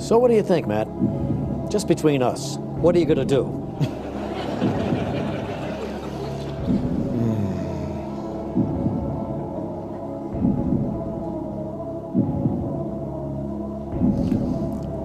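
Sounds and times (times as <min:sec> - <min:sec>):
suspenseful synthesizer music: 0:00.0 - 0:15.0.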